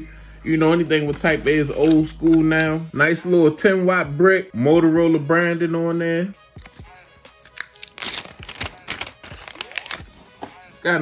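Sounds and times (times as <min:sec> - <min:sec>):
plastic sleeve crinkling: 0:01.0 - 0:02.8, 0:06.5 - 0:11.0.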